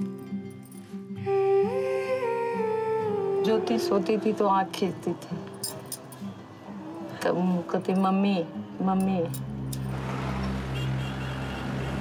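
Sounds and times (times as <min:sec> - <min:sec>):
soft musical drone: 0:00.0 - 0:12.0
woman speaking: 0:03.4 - 0:05.6, 0:07.2 - 0:09.4.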